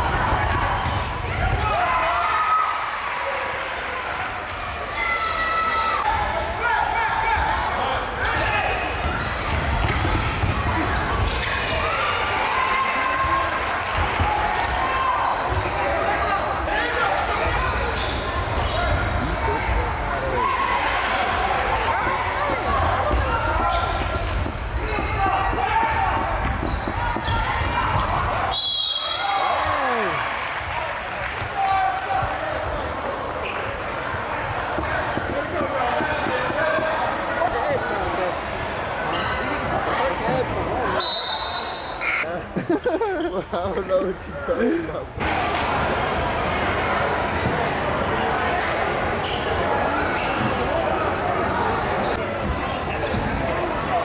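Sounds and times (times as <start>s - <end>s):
crowd voices and shouting: 0.0s - 54.0s
basketball bouncing on court: 9.0s - 11.5s, 23.9s - 28.3s.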